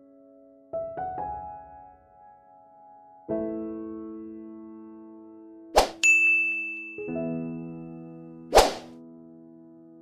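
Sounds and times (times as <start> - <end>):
bright chime ding: 6.0 - 7.1.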